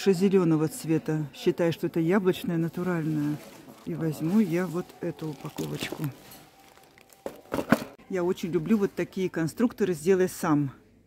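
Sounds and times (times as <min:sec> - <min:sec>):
packaging crinkling and rustling: 0:02.9 - 0:08.0.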